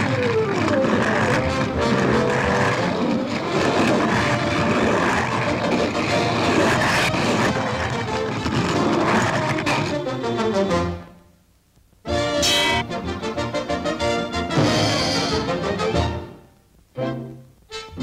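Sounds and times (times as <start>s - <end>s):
fast orchestral cartoon music: 0.0s - 11.1s, 12.1s - 16.4s, 17.0s - 18.0s
roller coaster car on track: 0.0s - 11.1s
sharp orchestral hit: 12.4s - 13.0s, 14.5s - 15.6s.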